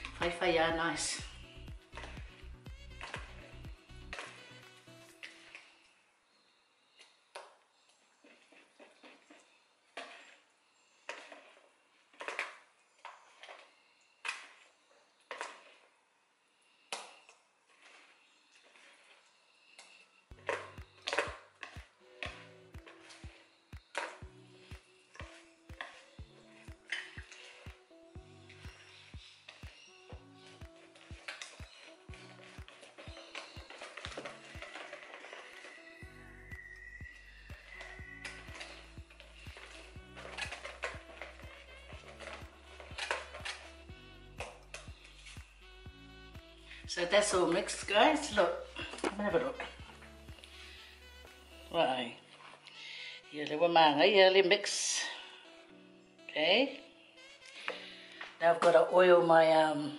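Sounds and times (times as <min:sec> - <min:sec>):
background music with steady beat: 0:00.0 - 0:05.8, 0:20.2 - 0:59.9.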